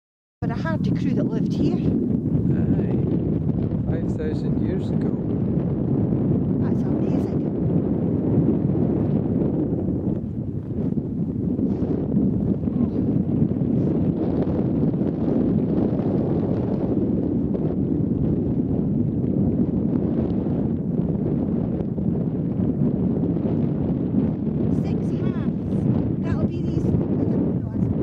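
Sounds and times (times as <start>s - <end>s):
wind buffeting microphone: 0.4s - 28.0s.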